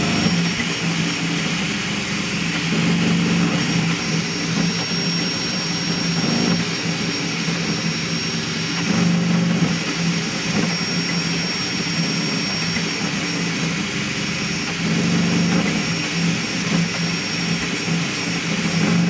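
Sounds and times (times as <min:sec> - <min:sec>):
cooling fans rushing: 0:00.0 - 0:19.0
stepper motors humming: 0:00.0 - 0:19.0
thin high whine: 0:00.0 - 0:19.0.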